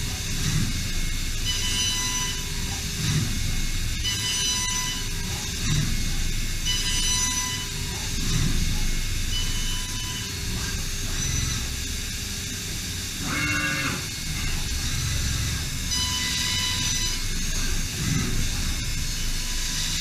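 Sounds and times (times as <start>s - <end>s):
machine milling metal: 0.0s - 20.0s
brief machine whine: 0.4s - 6.0s, 6.6s - 11.9s, 13.2s - 20.0s.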